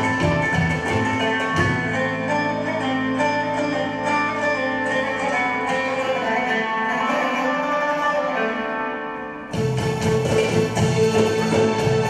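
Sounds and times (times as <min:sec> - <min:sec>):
belly dance music: 0:00.0 - 0:12.0.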